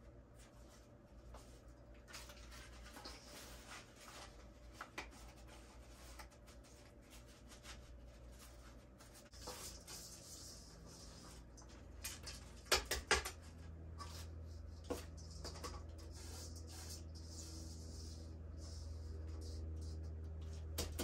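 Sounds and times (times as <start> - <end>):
potting soil rustling and scraping: 0.4 - 11.7.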